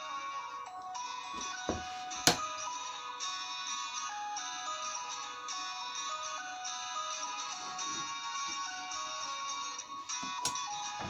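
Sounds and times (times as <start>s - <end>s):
background music melody: 0.0s - 11.0s.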